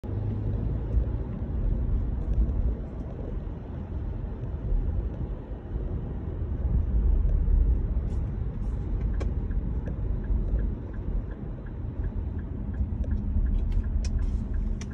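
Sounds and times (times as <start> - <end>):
car engine and tyres rumbling: 0.0 - 14.9.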